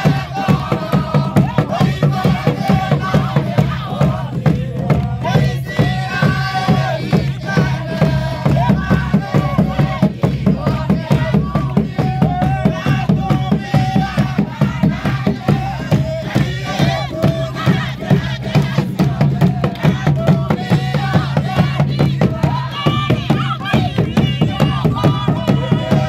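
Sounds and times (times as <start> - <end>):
crowd singing a hymn: 0.0 - 26.0
frame drums beaten with sticks: 0.0 - 26.0.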